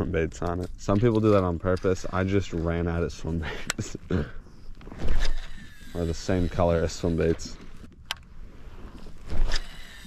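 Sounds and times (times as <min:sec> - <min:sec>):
reel spool whine: 0:05.0 - 0:07.3, 0:08.9 - 0:10.0.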